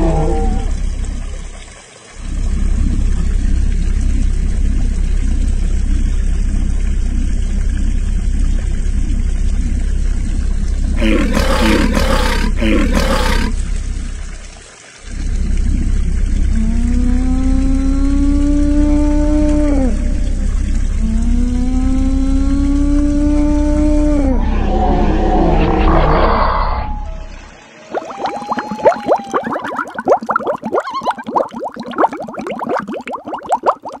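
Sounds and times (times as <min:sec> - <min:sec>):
moaning creature calls: 0:00.0 - 0:00.9, 0:11.0 - 0:13.6, 0:16.6 - 0:29.8
steady low rumble: 0:00.5 - 0:27.6.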